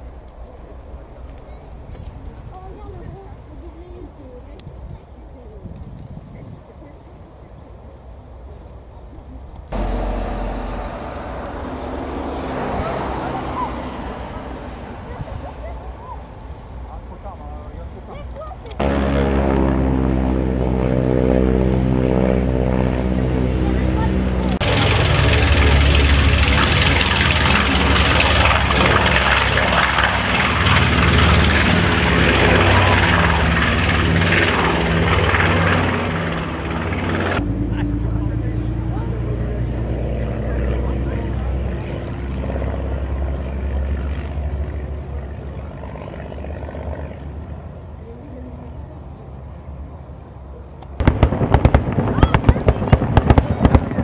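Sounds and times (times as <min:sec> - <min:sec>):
propeller plane engines droning: 0:00.0 - 0:54.0.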